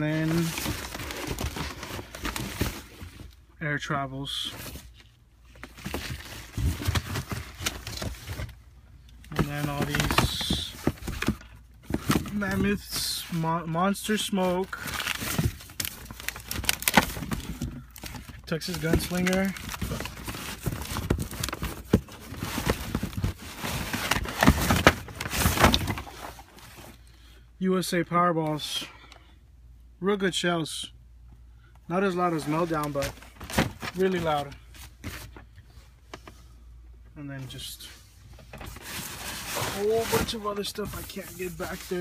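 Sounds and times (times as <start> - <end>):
boxes and plastic packs rustling: 0.0 - 27.1, 31.9 - 36.4, 37.5 - 42.0.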